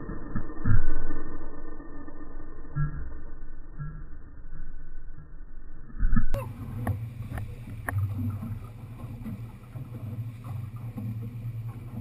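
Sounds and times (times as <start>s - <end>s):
boat motor running: 6.3s - 12.0s
hull slapping on waves: 6.5s - 12.0s.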